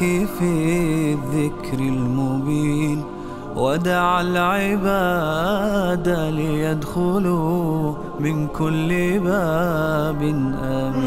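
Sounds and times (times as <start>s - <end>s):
men singing wordless chant: 0.0s - 11.0s.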